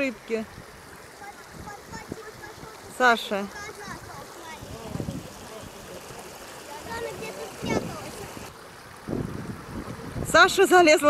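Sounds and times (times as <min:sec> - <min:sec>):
voices: 0:00.0 - 0:08.6, 0:10.2 - 0:11.0
water running over rocks: 0:00.0 - 0:11.0.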